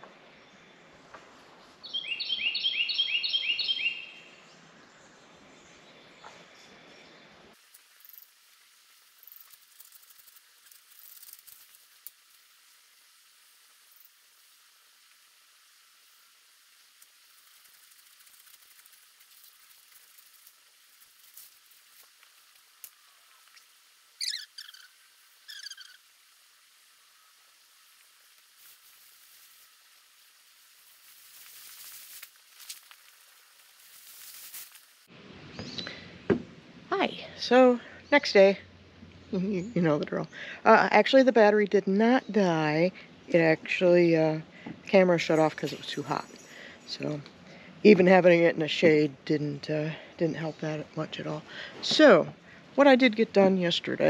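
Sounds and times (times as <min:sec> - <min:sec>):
songbird singing high notes: 0:01.8 - 0:04.4, 0:24.2 - 0:26.1
short gliding bird calls: 0:22.9 - 0:26.3.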